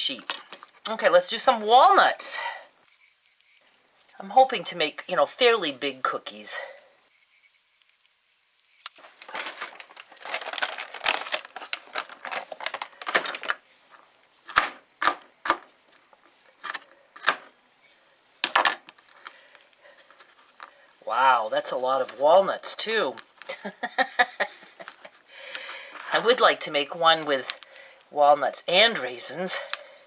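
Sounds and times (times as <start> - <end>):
knife crunching walnuts: 14.4 - 17.5.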